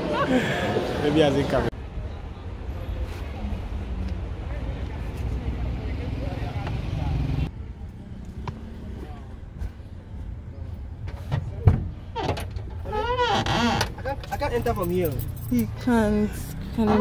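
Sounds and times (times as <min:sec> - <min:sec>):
traffic noise: 0:00.0 - 0:17.0
wind: 0:00.0 - 0:17.0.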